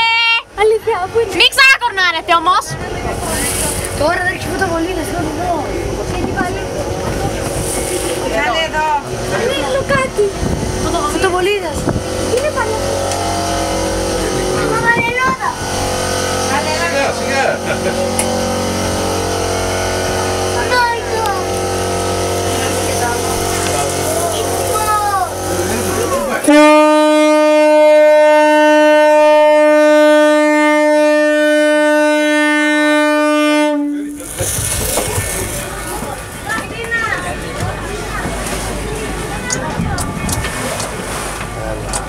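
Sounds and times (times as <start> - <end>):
boat engine humming: 0.0 - 42.0
ship's horn blast: 1.8 - 36.4.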